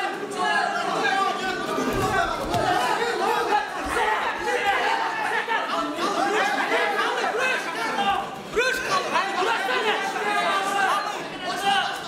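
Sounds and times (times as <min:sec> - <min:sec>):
crowd shouting and talking: 0:00.0 - 0:12.0.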